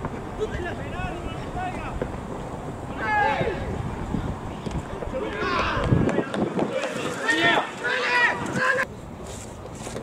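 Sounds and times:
wind on microphone: 0:00.0 - 0:08.8.

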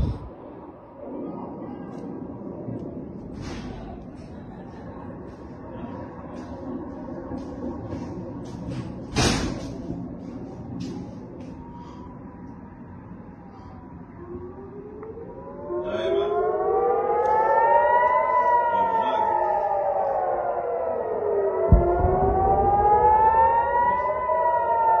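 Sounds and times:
warning sirens wailing: 0:00.0 - 0:25.0.

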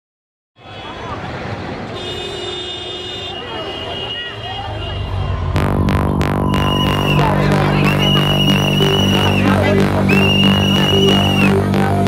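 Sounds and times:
street traffic: 0:00.6 - 0:12.0
electronic dance music: 0:05.1 - 0:12.0
low rumble: 0:05.1 - 0:12.0
babble of voices: 0:06.9 - 0:11.6.

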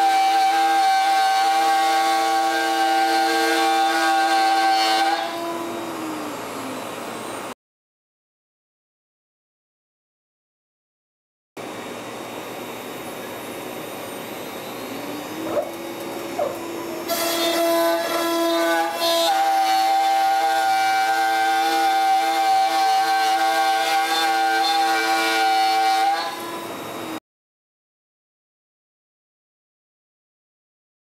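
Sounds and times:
end mill cutting plywood: 0:00.0 - 0:07.5, 0:11.6 - 0:27.2
router spindle whining: 0:00.0 - 0:07.5, 0:11.7 - 0:27.2.

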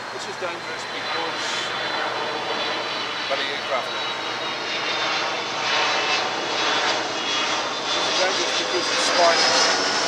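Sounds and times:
aircraft roar overhead: 0:00.0 - 0:10.0.

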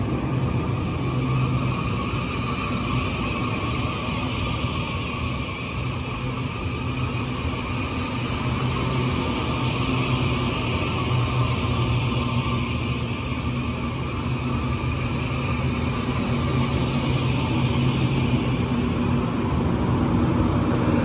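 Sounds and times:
electric train rolling past: 0:00.0 - 0:21.0.

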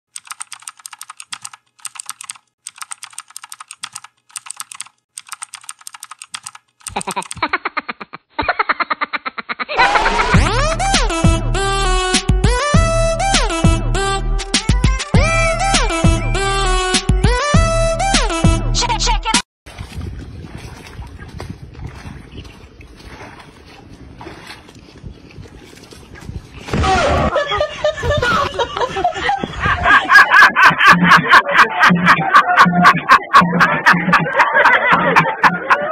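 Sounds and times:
rapid keyboard typing: 0:00.2 - 0:07.5
feet splashing through water: 0:19.6 - 0:27.0
wind buffeting microphone: 0:19.7 - 0:26.7, 0:27.4 - 0:30.1.

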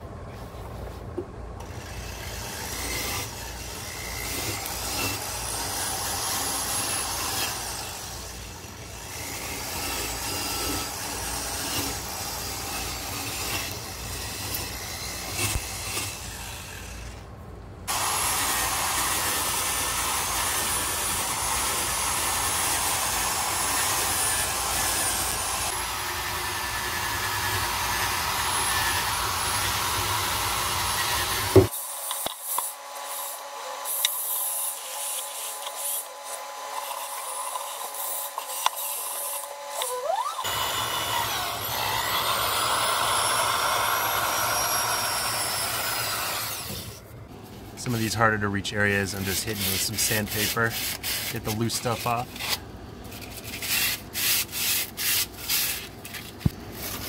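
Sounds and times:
wire brush drill scraping metal: 0:47.8 - 0:57.0.

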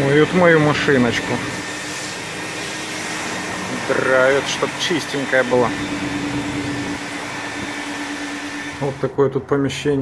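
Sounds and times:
vacuum cleaner running: 0:00.0 - 0:09.4.

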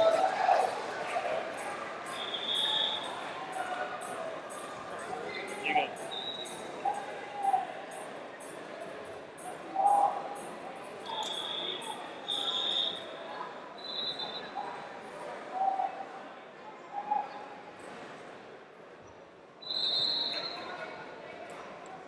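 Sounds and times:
voices calling out: 0:05.5 - 0:06.0.

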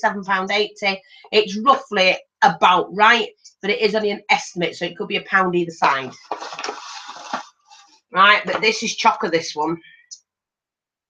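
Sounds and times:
paper bag rustling: 0:06.0 - 0:08.0.

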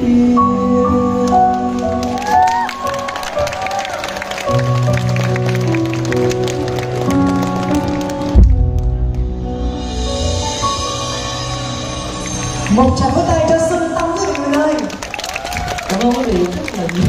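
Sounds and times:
keyboard chords: 0:00.0 - 0:14.8.

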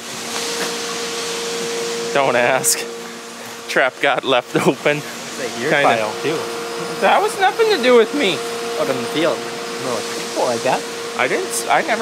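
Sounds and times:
combine harvester running: 0:00.0 - 0:12.0
mid-pitched machine whine: 0:00.0 - 0:12.0.

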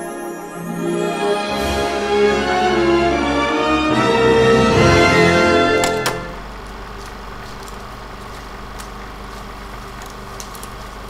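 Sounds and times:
loud music: 0:00.0 - 0:06.4
low hum with hiss: 0:04.8 - 0:11.0.

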